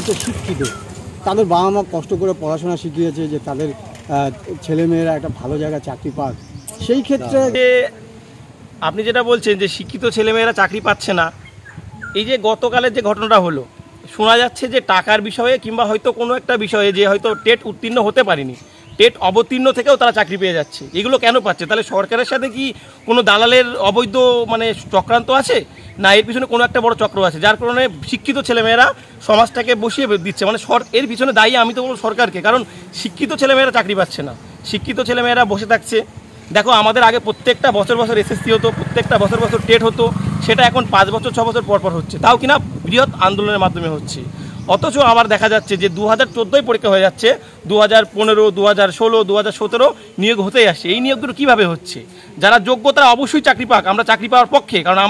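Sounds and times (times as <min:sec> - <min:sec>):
man speaking: 0:00.0 - 0:08.0, 0:12.2 - 0:55.0
vehicle engine rumble passing: 0:36.0 - 0:46.0.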